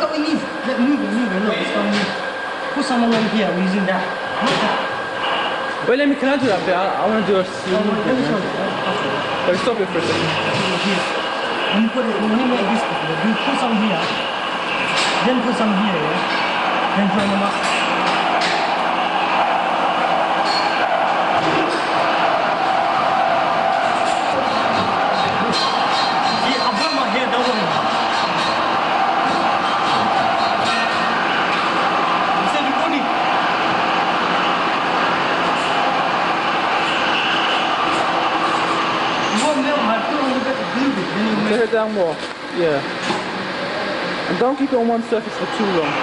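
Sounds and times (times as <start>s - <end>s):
faint voices: 0.0s - 46.0s.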